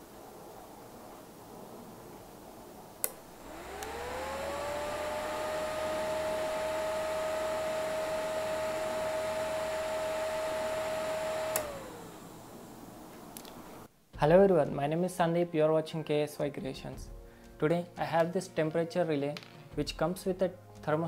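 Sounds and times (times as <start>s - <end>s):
cooling fan whining: 2.9s - 13.9s
relay clicking: 3.0s - 12.5s.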